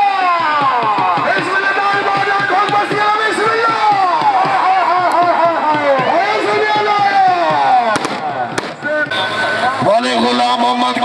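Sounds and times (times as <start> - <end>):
crowd noise: 0.0 - 11.0
sharp cracks: 7.8 - 9.0.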